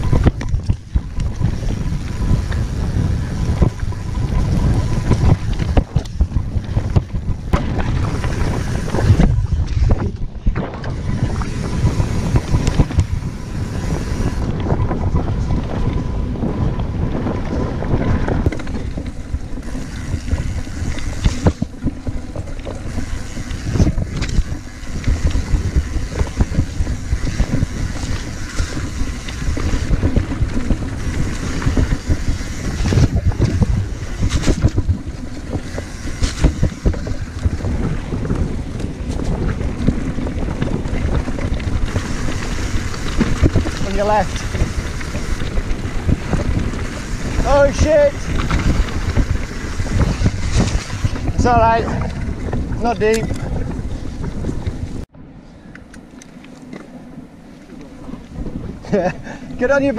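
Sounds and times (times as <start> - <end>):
bike clattering over bumps: 0.0 - 55.0
tyres rumbling on dirt track: 0.0 - 55.2, 56.4 - 59.9
wind buffeting microphone: 0.0 - 59.9.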